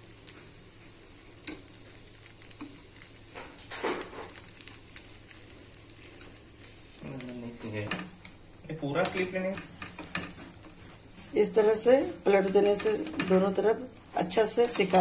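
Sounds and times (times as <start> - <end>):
batter sizzling in oiled pan: 0.0 - 15.0.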